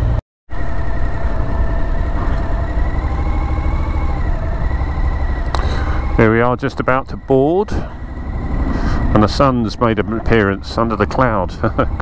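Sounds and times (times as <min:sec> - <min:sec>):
motorcycle engine running: 0:00.0 - 0:12.0.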